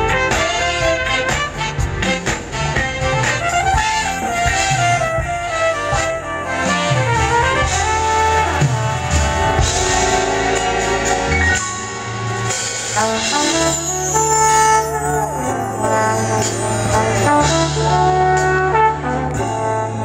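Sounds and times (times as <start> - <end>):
drums: 0.0 - 20.0
electric bass: 0.0 - 20.0
horn section playing: 0.0 - 20.0.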